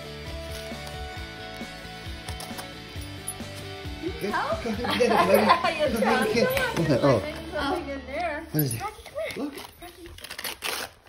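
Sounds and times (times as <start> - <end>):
background music: 0.0 - 11.0
dog tearing wrapping paper: 0.3 - 1.7, 8.9 - 11.0.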